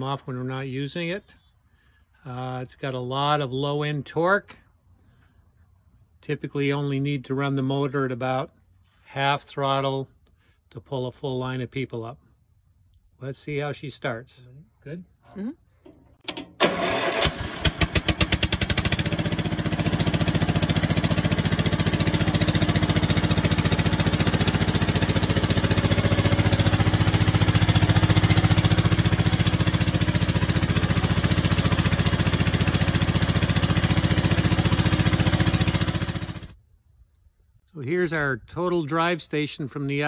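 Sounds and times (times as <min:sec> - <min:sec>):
engine starting and running: 0:15.2 - 0:36.6.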